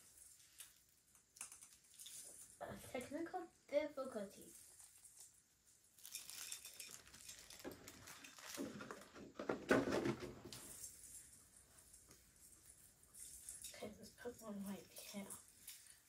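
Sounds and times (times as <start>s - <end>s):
plastic branches rustling: 0.0s - 3.1s, 4.2s - 16.0s.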